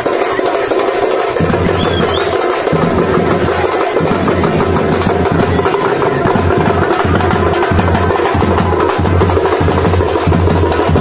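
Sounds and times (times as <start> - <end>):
drums in a driving beat: 0.0 - 11.0.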